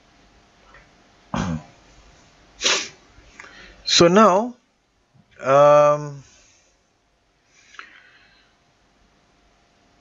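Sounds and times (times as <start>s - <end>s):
man breathing sharply: 2.7s - 3.8s, 7.5s - 8.6s
man speaking: 3.9s - 4.6s, 5.4s - 6.2s.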